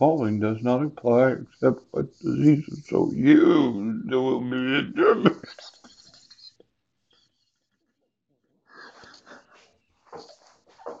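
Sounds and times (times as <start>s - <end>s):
man laughing breathily: 4.6s - 6.6s.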